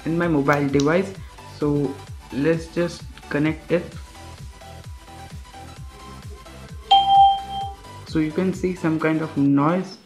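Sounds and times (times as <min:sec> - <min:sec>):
quiet background music with beat: 0:00.0 - 0:10.0
electronic beep: 0:06.9 - 0:07.8.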